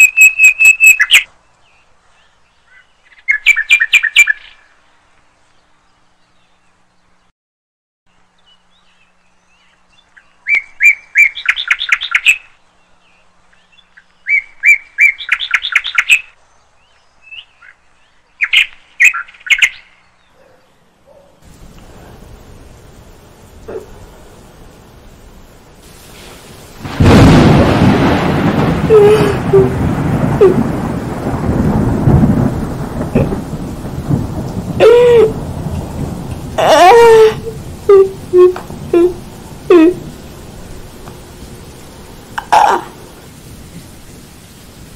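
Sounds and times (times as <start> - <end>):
bird singing: 0.0 - 7.3, 8.1 - 21.4
rain: 0.0 - 7.3, 8.1 - 44.9
thunder: 25.9 - 42.4
wailing cry: 28.9 - 29.8, 30.4 - 30.8, 34.8 - 35.4, 36.6 - 40.1, 42.4 - 43.0.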